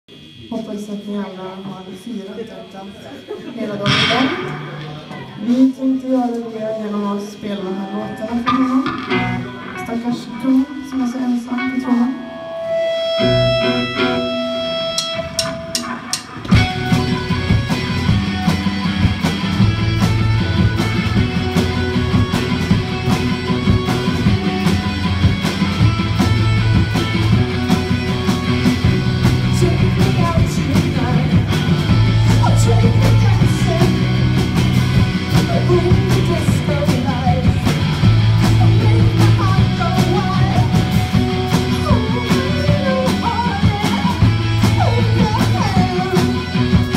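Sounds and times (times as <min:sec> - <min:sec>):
rock band playing: 0:03.2 - 0:46.9
held guitar note: 0:03.8 - 0:06.0, 0:07.7 - 0:18.1
person singing: 0:03.8 - 0:12.4, 0:29.4 - 0:31.5, 0:38.4 - 0:46.9.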